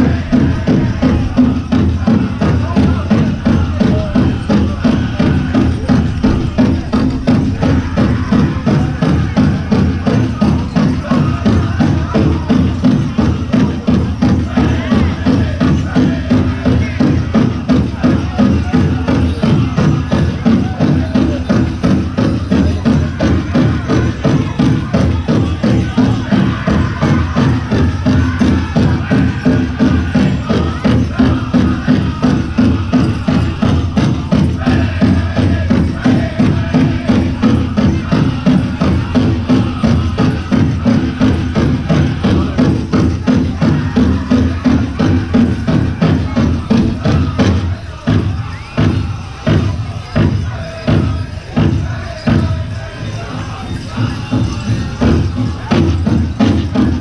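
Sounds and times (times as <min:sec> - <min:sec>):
group singing: 0:00.0 - 0:57.0
steady drum beat: 0:00.0 - 0:57.0.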